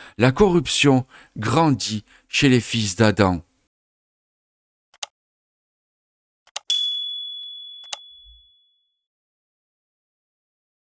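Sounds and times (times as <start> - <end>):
bright bell ding: 6.7 - 8.8.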